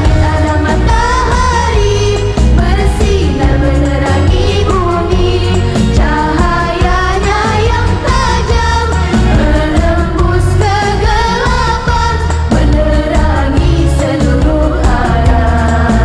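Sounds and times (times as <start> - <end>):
girls singing through microphone: 0.0 - 16.0.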